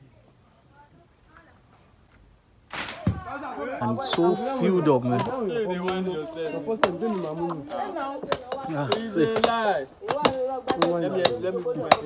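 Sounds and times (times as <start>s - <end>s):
people talking: 3.0s - 12.0s
blade chopping coconuts: 4.0s - 7.6s, 8.2s - 12.0s.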